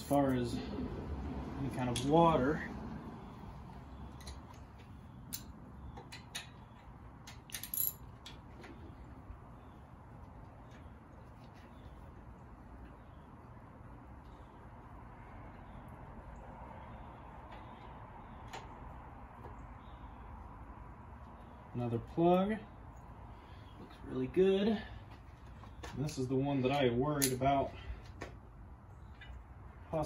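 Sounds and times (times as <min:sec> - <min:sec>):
metal tools clinking: 0:07.3 - 0:08.4, 0:26.0 - 0:27.5.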